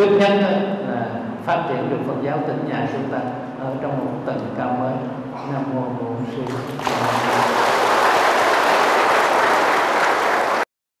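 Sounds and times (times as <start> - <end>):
audience applauding: 6.4 - 10.7.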